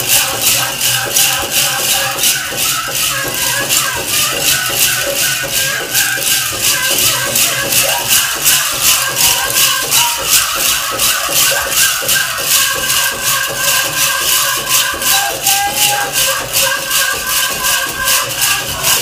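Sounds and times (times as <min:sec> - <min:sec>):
drum music with steady beat: 0:00.0 - 0:19.0
metal jingle cones rattling: 0:00.0 - 0:19.0.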